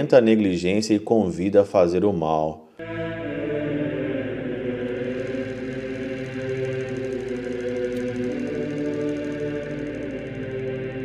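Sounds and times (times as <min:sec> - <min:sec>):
choir chanting sustained chord: 0:02.8 - 0:11.0.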